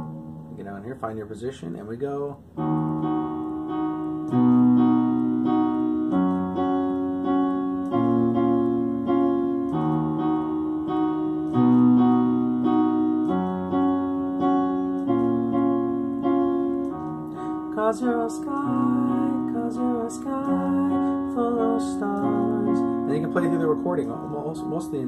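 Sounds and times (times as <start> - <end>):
digital piano chords: 0.0 - 25.0.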